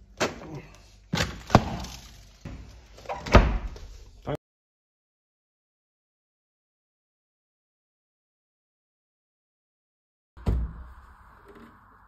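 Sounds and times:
fridge door thudding shut: 10.4 - 10.8.

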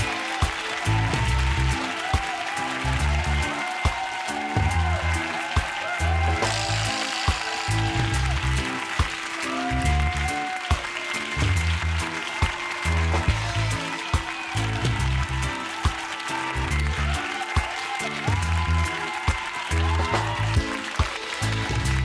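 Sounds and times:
steady drum beat: 0.0 - 22.0.

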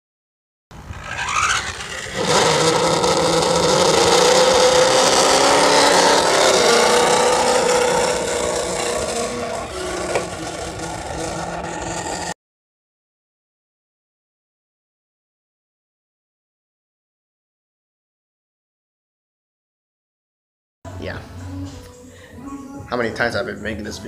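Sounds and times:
car engine running at high revs: 0.8 - 12.4.

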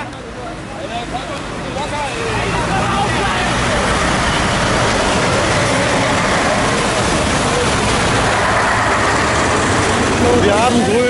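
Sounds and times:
large vehicle engines running: 0.0 - 11.0
tyres hissing on wet road: 0.2 - 11.0.

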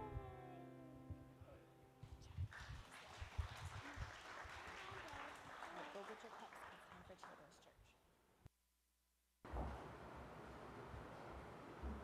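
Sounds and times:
scattered applause: 2.2 - 7.6.

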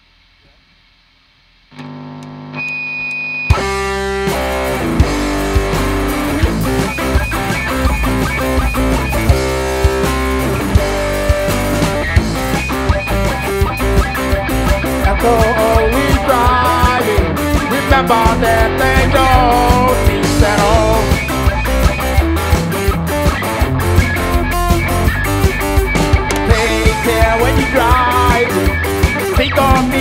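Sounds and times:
electric guitar chord: 3.5 - 22.9, 23.6 - 30.0
drum kit beat: 3.5 - 30.0
live reggae band playing: 3.5 - 30.0.

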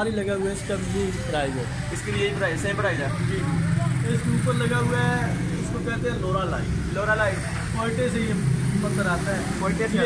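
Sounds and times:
men talking: 0.0 - 10.0.

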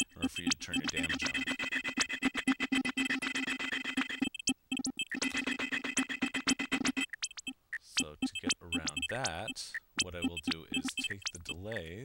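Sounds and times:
glitchy electronic drum pattern: 0.0 - 11.7
steady held tones: 0.0 - 11.7.

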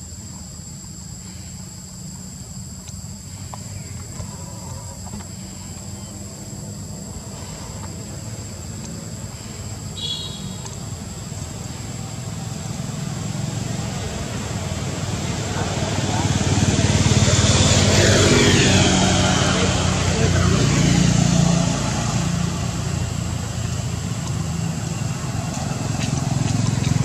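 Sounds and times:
passing engine rumble: 10.5 - 27.0.

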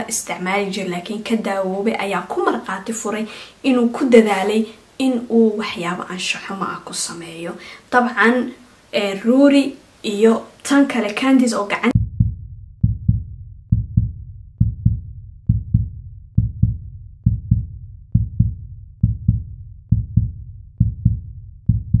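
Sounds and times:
heartbeat thumps: 12.0 - 22.0.

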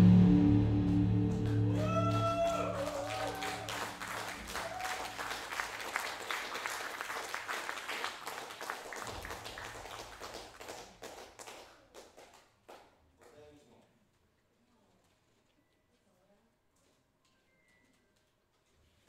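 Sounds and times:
band held notes: 0.0 - 4.6
audience applause: 1.3 - 12.3.

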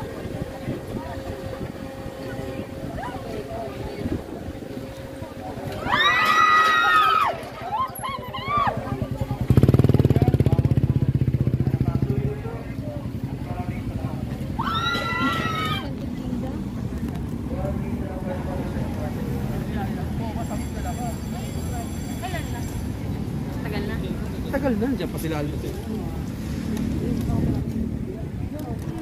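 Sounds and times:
busy promenade background: 0.0 - 29.0
motorcycle engine running: 8.5 - 14.6.

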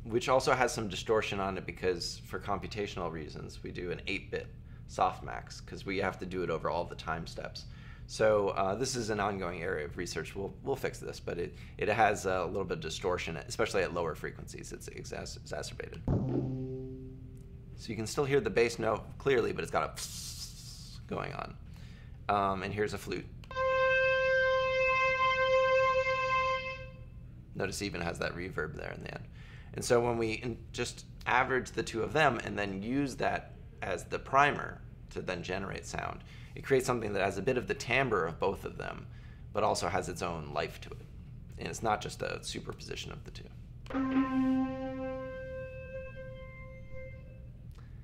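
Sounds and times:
synthesized flute note: 16.1 - 17.6, 23.5 - 27.1, 43.9 - 47.7.

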